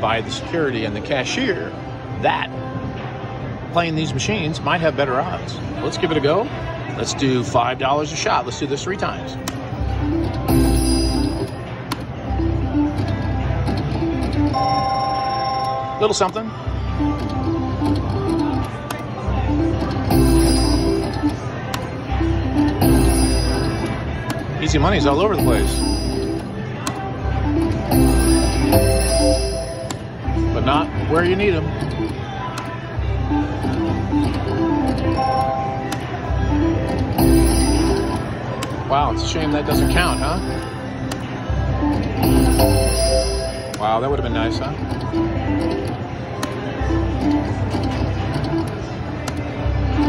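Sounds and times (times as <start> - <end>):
low casino floor rumble: 9.0 - 50.0
slot machine electronic notes: 9.7 - 16.4, 19.5 - 21.6, 22.2 - 26.7, 27.4 - 32.2, 33.3 - 41.1, 41.8 - 46.0
bell-like ringing: 10.5 - 11.7, 20.1 - 21.4, 22.8 - 24.1, 25.4 - 26.6, 27.9 - 30.1, 37.2 - 38.5, 39.7 - 40.9, 42.2 - 44.0.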